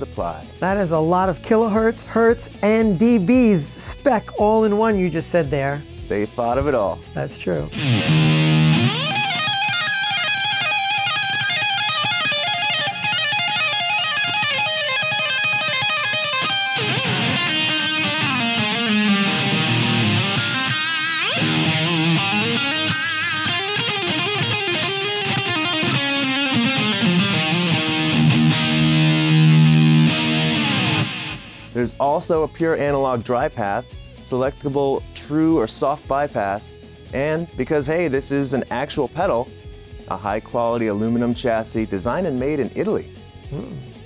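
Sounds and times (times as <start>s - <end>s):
electric guitar: 7.7s - 31.8s.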